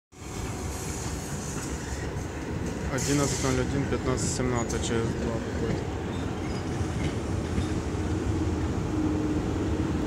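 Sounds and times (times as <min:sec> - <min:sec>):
train wheels rumbling on rail: 0:00.1 - 0:10.0.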